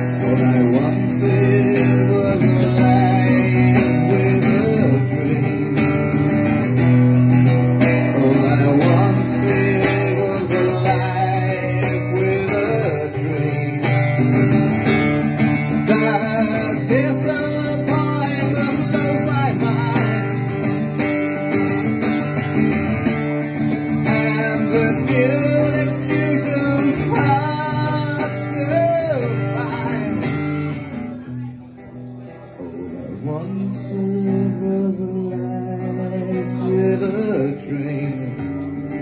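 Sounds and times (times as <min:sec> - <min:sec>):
man singing: 0:00.0 - 0:21.0, 0:23.5 - 0:30.8, 0:32.4 - 0:39.0
acoustic guitar strumming: 0:00.0 - 0:39.0.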